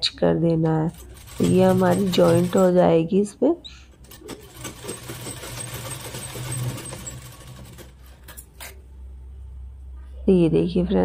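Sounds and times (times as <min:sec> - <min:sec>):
sewing machine stitching: 0:00.9 - 0:02.8, 0:04.0 - 0:08.7.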